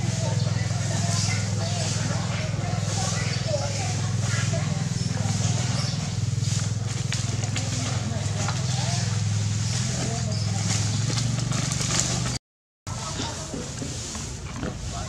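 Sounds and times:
distant voices talking: 0.0s - 15.0s
steady low hum: 0.0s - 15.0s.

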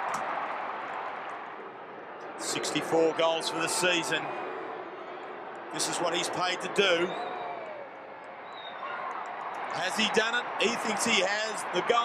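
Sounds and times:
stadium crowd roar: 0.0s - 12.0s.

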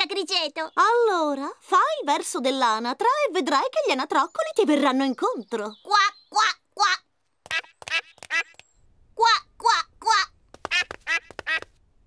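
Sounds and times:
cartoon duck quacks: 5.9s - 8.6s, 9.2s - 11.7s.

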